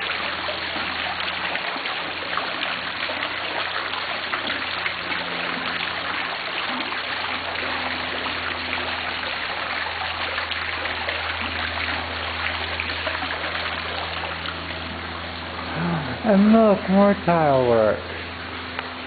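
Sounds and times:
fountain water splashing: 0.0s - 19.0s.

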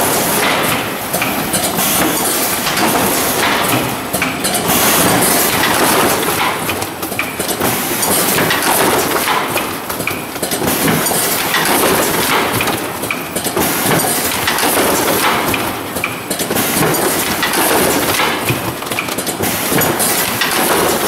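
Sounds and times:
plastic jugs clunking and rattling: 0.0s - 21.0s
machine mechanism knocks: 0.4s - 9.5s.

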